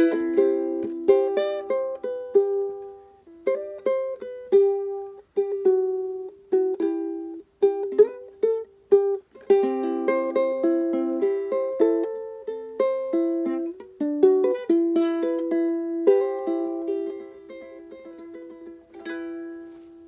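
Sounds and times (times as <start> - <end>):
ukulele strummed and plucked: 0.0 - 20.0.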